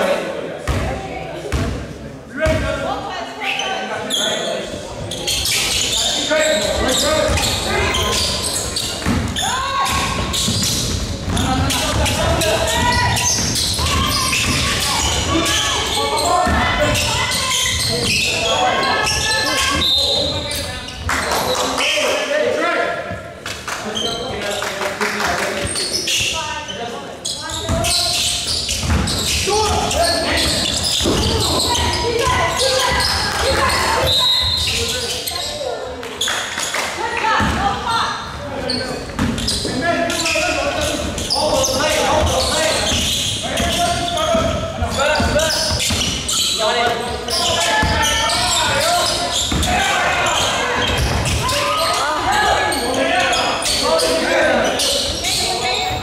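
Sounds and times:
people talking and calling out: 0.0 - 56.0
basketball bouncing on court: 0.6 - 1.8, 9.0 - 15.2, 28.7 - 34.2, 42.2 - 46.2, 47.8 - 48.6, 49.3 - 51.5.

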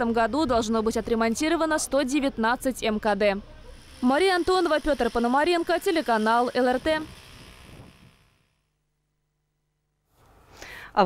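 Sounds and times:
faint street ambience: 0.0 - 7.4.

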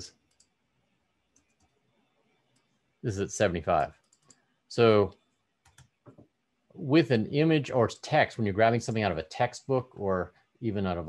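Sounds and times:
computer mouse clicks: 0.2 - 0.6, 1.3 - 1.8, 2.5 - 2.8, 3.8 - 4.4, 5.6 - 6.3.

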